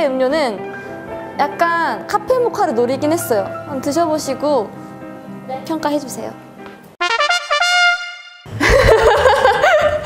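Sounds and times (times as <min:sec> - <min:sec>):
comedic trumpet notes: 0:07.0 - 0:08.5
woman laughing: 0:08.5 - 0:10.0.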